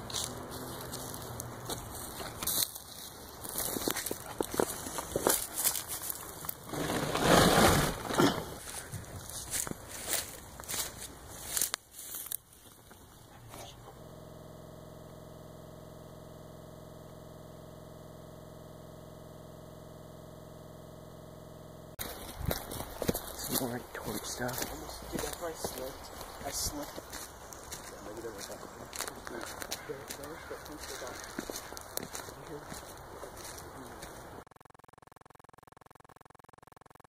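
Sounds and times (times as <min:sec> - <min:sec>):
crackling movement through brush: 0:00.0 - 0:13.4, 0:22.0 - 0:34.4
steady hum with faint buzz: 0:07.9 - 0:34.4.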